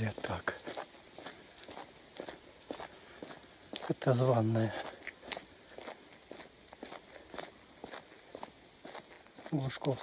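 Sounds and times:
footsteps on paved road: 0:00.0 - 0:10.0.

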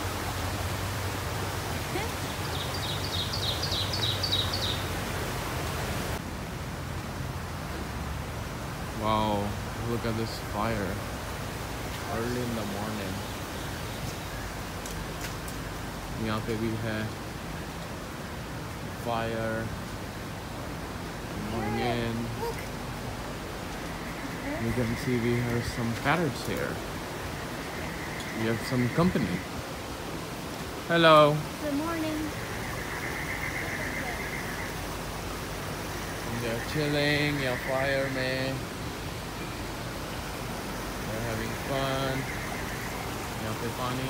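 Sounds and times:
outdoor background hiss: 0:00.0 - 0:44.0.

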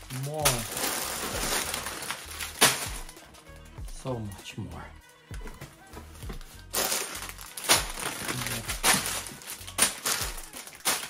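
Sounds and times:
plastic bags rustling and crinkling: 0:00.0 - 0:03.4, 0:06.3 - 0:11.0.

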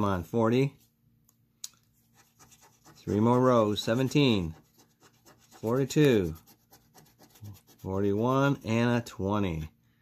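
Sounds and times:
coin scraping scratch ticket: 0:02.2 - 0:08.3.

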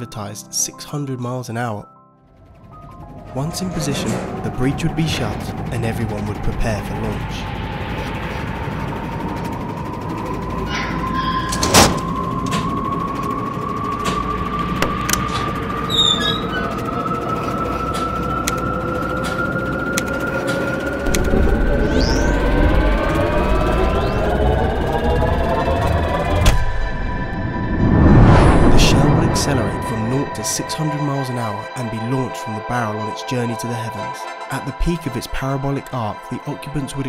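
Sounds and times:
electric whine rising in pitch: 0:02.3 - 0:32.4
rising tones: 0:02.3 - 0:32.7.

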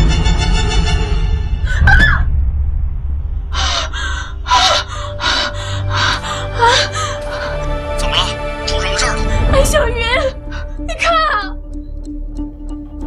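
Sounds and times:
tense background music: 0:00.0 - 0:13.0
woman gasping and panting: 0:03.6 - 0:07.6
woman whimpering cries: 0:04.5 - 0:07.6.

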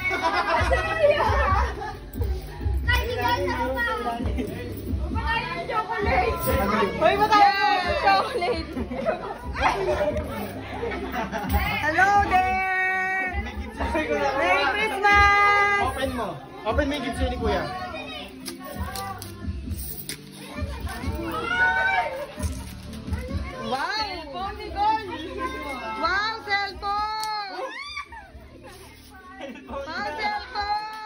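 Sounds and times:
indistinct chatter of voices: 0:00.0 - 0:31.0
children's excited voices: 0:20.4 - 0:22.4.

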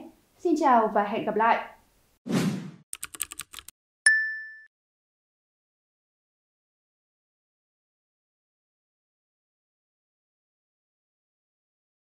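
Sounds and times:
keyboard typing clicks: 0:03.0 - 0:03.7
bright ding: 0:04.1 - 0:04.7.

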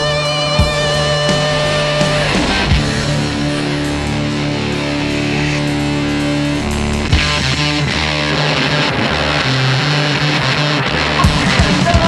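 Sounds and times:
snowmobile engines revving: 0:00.0 - 0:12.0.

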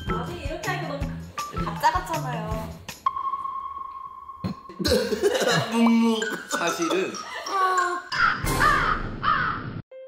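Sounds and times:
person speaking: 0:04.5 - 0:08.0.

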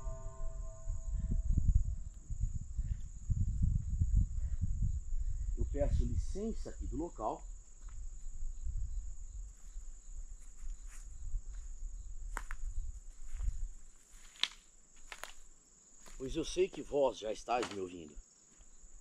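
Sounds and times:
low rumble: 0:00.0 - 0:05.6
night insects droning: 0:00.0 - 0:19.0
person speaking: 0:16.2 - 0:18.1.

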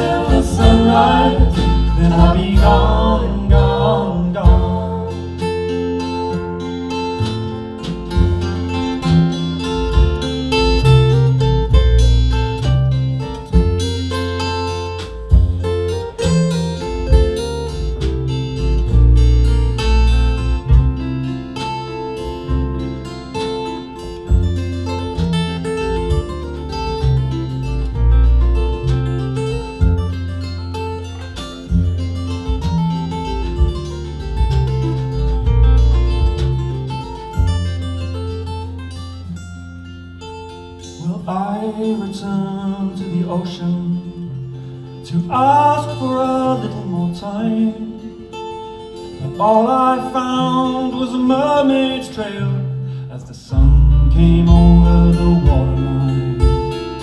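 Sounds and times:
drums: 0:00.0 - 0:39.3, 0:53.6 - 0:57.0
acoustic guitars strummed: 0:00.0 - 0:57.0
double bass low notes: 0:00.0 - 0:57.0.

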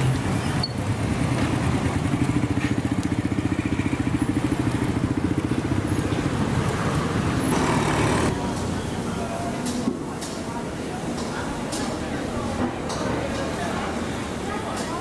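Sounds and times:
street noise: 0:00.0 - 0:15.0
vehicle engine pulsing: 0:07.2 - 0:08.5.

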